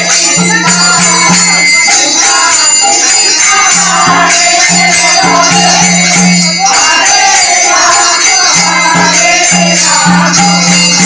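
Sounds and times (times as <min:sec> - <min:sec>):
group singing devotional song: 0:00.0 - 0:11.0
metallic percussion ringing: 0:00.0 - 0:11.0.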